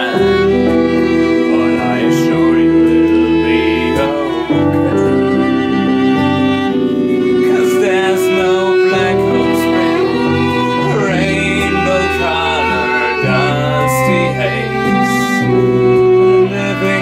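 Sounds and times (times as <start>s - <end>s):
bowed strings: 0.0s - 17.0s
electric bass: 0.0s - 17.0s
nylon-string acoustic guitar: 0.0s - 17.0s.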